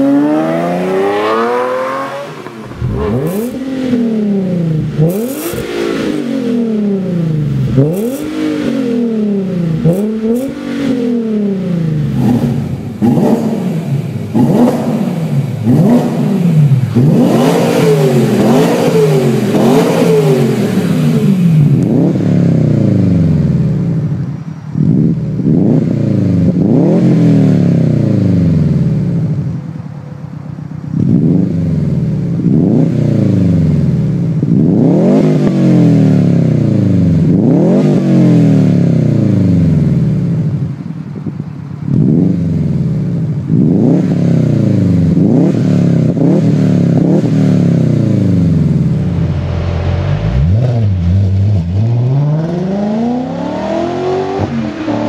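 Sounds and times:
turbocharged engine revving: 0.0s - 24.2s, 24.8s - 29.4s, 31.0s - 40.6s, 41.9s - 55.0s
car engine revving: 0.0s - 29.5s, 30.8s - 40.8s, 41.9s - 55.0s.

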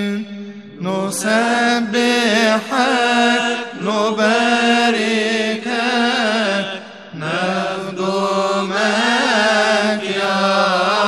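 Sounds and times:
man chanting a hymn: 0.0s - 11.0s
breaths: 6.8s - 7.2s.

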